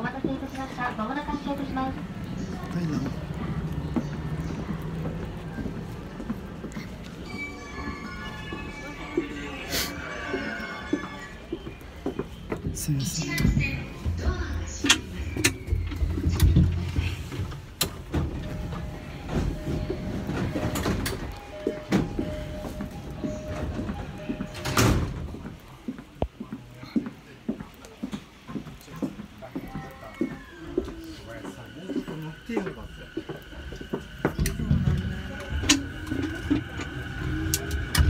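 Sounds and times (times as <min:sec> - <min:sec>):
train rumble and rattle: 0:00.0 - 0:26.5, 0:28.1 - 0:38.0.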